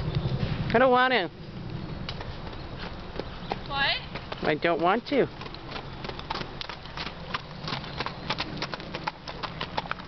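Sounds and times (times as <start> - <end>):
hooves on gravel: 1.6 - 10.0.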